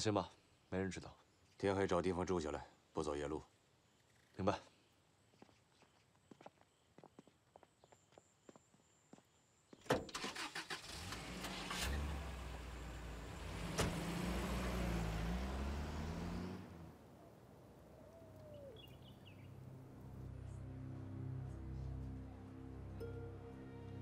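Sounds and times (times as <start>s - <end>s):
car engine rumbling: 10.1s - 20.2s
car door slamming: 13.6s - 14.2s.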